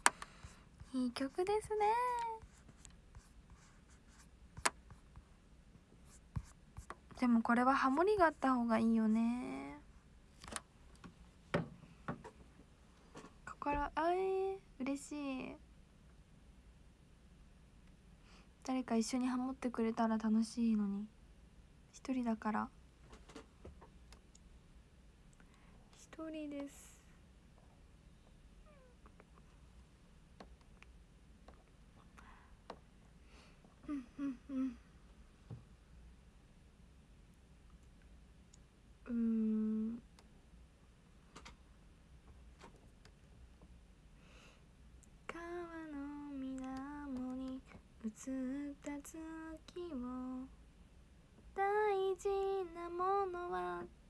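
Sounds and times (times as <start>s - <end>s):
woman singing a held note: 39.1s - 40.0s
faint ticks: 46.4s - 47.8s
faint clicks: 46.5s - 47.8s.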